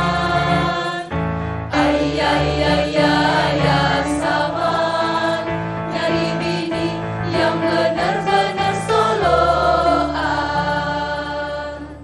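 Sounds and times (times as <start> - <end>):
choir singing: 0.0 - 12.0
musical accompaniment: 0.0 - 12.0.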